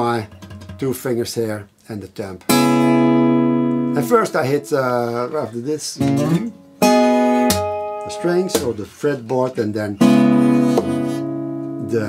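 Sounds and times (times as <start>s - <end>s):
percussive hit on guitar strings: 0.3s - 0.8s, 6.0s - 8.8s, 10.1s - 11.3s
acoustic guitar chord ringing: 2.5s - 5.4s, 6.0s - 8.8s, 10.0s - 12.0s.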